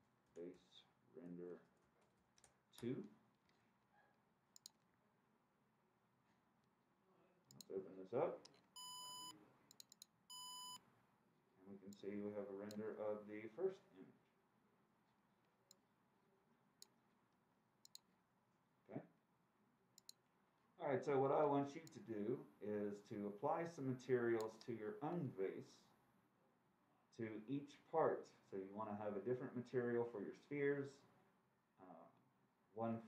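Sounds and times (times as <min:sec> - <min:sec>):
faint mouse clicks: 0:04.5 - 0:05.0, 0:07.5 - 0:07.8, 0:09.7 - 0:10.2, 0:17.8 - 0:18.1, 0:20.0 - 0:20.2, 0:24.4 - 0:24.8
mouse double-clicks: 0:04.6 - 0:04.8, 0:09.7 - 0:10.8, 0:17.8 - 0:18.1, 0:24.4 - 0:24.7.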